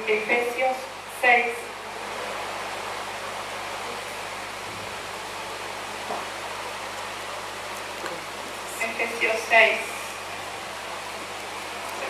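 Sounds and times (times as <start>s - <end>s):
steady hiss: 0.0s - 12.0s.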